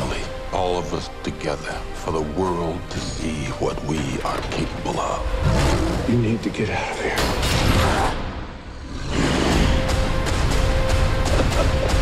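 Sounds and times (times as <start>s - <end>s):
film trailer score: 0.0s - 12.0s.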